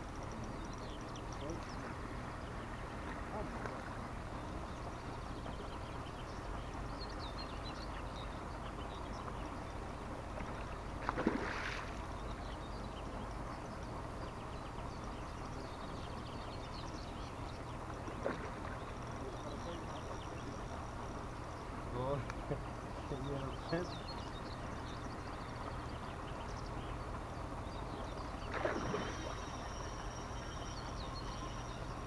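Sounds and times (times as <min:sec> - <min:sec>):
water splash: 0:11.0 - 0:12.0, 0:28.5 - 0:29.7.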